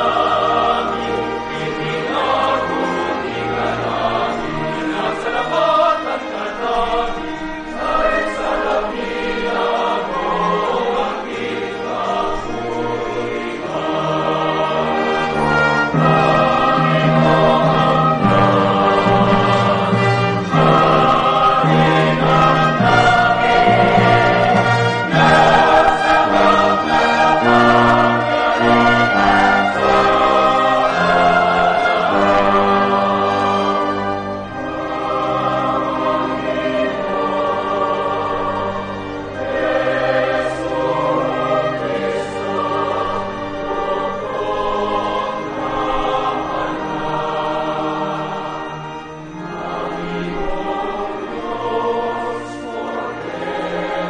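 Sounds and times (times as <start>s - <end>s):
church choir with accompaniment: 0.0s - 54.0s.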